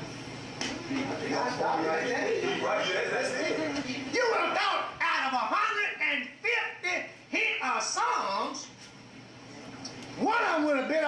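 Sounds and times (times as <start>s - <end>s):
man preaching: 4.1s - 8.7s, 10.2s - 11.0s.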